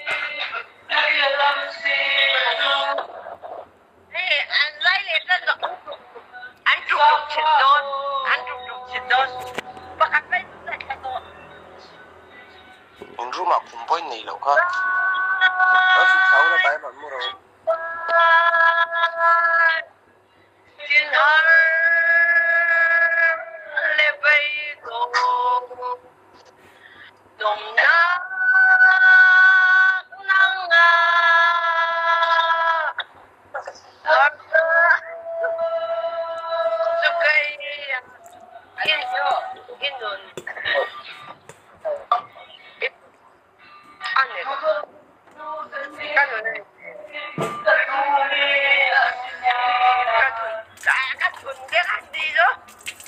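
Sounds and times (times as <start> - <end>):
woman singing: 0.0 - 3.3, 4.1 - 11.9, 14.6 - 16.6, 17.3 - 20.0, 20.8 - 26.1, 27.4 - 33.0, 33.6 - 42.9, 44.0 - 52.6.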